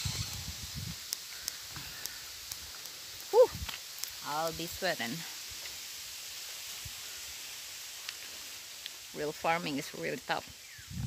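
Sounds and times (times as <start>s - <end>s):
faint outdoor hiss: 0.0s - 11.0s.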